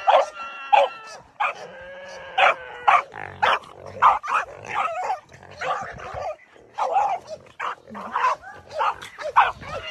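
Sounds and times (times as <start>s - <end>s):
dog barking and yipping: 0.0s - 1.8s, 2.4s - 9.9s.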